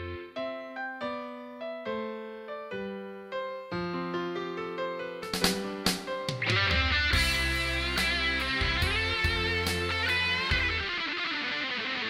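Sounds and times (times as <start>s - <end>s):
electric guitar: 6.3s - 12.0s
live rock band playing: 6.3s - 12.0s.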